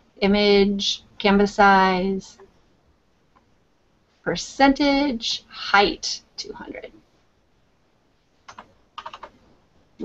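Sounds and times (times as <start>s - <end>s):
computer keyboard keystrokes: 8.5s - 9.3s.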